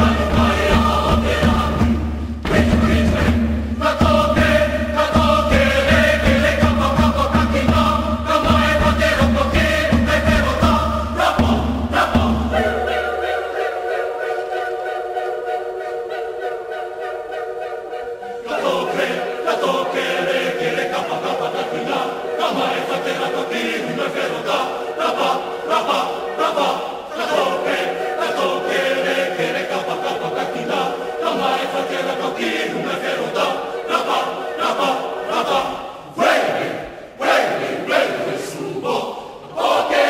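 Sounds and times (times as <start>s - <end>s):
mixed choir singing: 0.0s - 40.0s.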